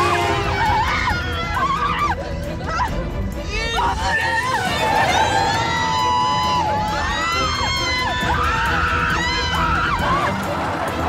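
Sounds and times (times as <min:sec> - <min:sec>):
women screaming in panic: 0:00.0 - 0:02.9, 0:03.8 - 0:10.7
dramatic background music: 0:00.0 - 0:11.0.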